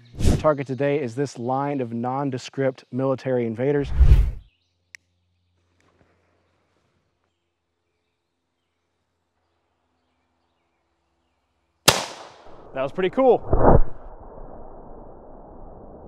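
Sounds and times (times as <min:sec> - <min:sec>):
brief low rumble: 0:03.8 - 0:04.5, 0:12.5 - 0:16.0
cannon firing: 0:11.9 - 0:14.0.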